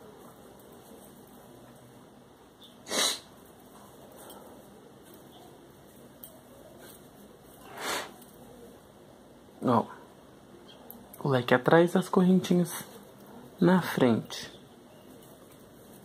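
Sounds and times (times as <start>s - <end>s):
short sharp breaths: 7.6s - 8.2s.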